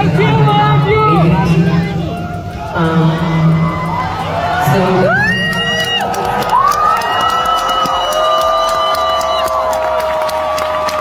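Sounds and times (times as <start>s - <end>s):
crowd cheering: 0.0s - 11.0s
high screams: 2.5s - 11.0s.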